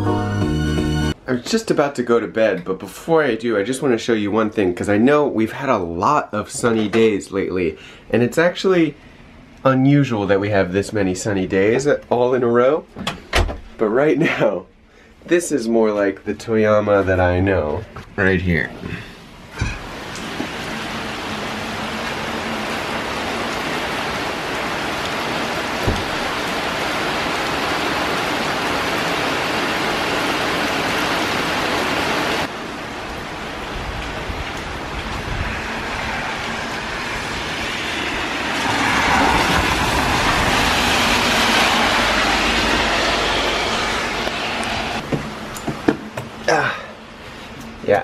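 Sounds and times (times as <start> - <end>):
heavy rain hissing: 18.9 - 45.0
wind rumbling on microphone: 33.1 - 45.0.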